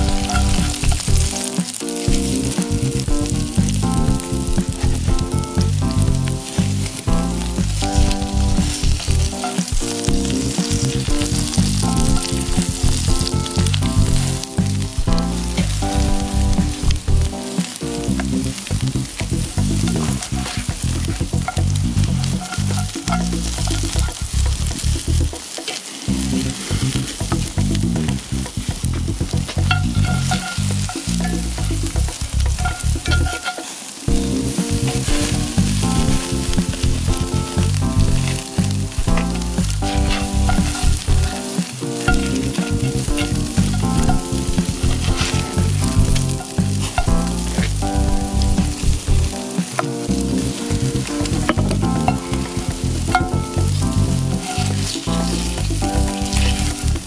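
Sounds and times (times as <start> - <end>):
background music with steady beat: 0.0 - 57.0
food sizzling on a grill: 0.0 - 57.0.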